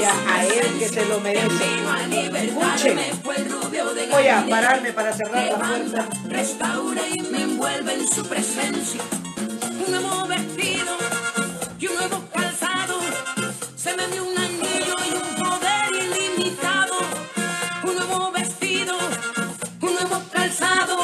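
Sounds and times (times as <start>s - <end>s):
woman singing: 0.0s - 9.2s, 9.8s - 21.0s.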